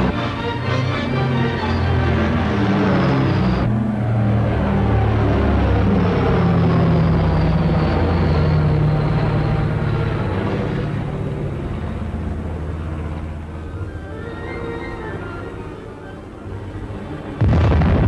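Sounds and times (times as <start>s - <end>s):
propeller aircraft engines droning: 0.0s - 18.0s.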